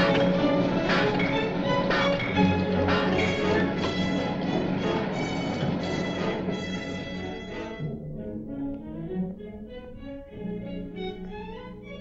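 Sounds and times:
orchestral film music: 0.0 - 12.0.

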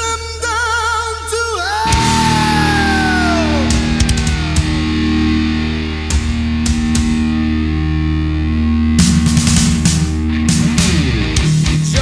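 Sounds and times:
distorted electric guitar and bass: 1.8 - 12.0
drum and cymbal hits: 1.9 - 7.4, 9.0 - 12.0.

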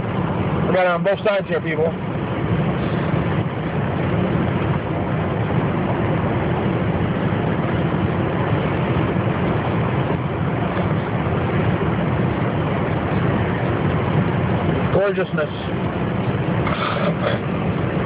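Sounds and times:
car cabin road and engine hum: 0.0 - 18.0.

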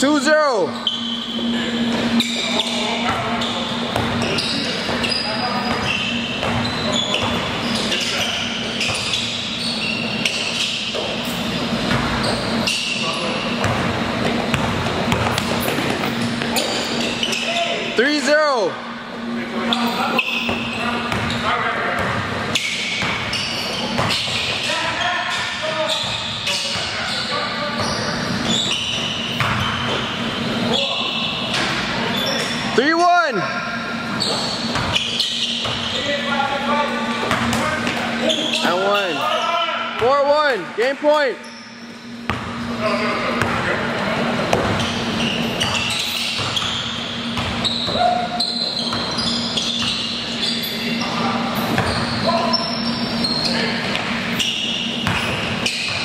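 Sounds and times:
players calling: 0.0 - 55.9
sneaker squeaks: 0.0 - 56.0
basketballs bouncing: 1.9 - 13.0, 13.6 - 17.6, 20.2 - 27.1, 27.8 - 30.9, 34.2 - 36.1, 36.8 - 39.2, 42.0 - 50.3, 51.6 - 53.0, 53.8 - 56.0.

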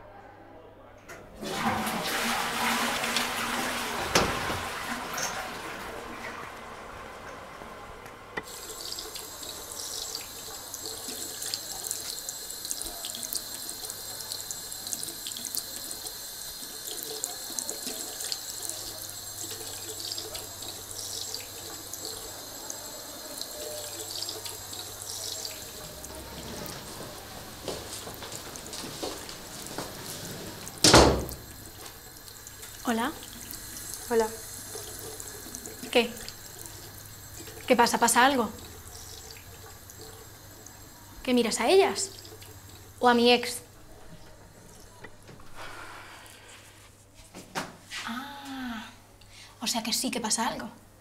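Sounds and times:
tap water splashing into basin: 1.5 - 6.2, 8.4 - 40.8.

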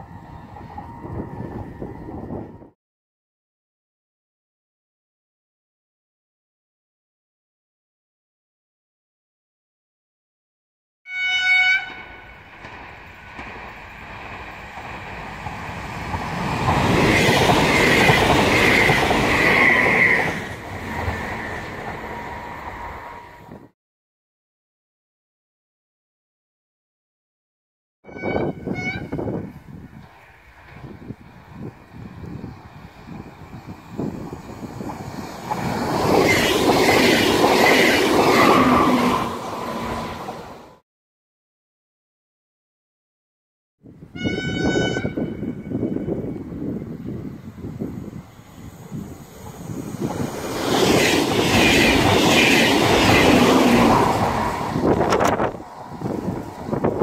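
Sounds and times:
train horn blast: 11.1 - 12.4, 28.0 - 29.4, 44.1 - 46.0
train wheels rumbling on rail: 11.8 - 23.7, 28.1 - 40.8, 44.1 - 57.0.

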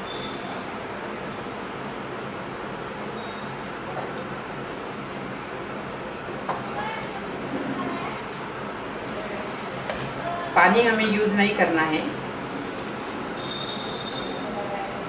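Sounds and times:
steady whirring noise: 0.0 - 15.0.

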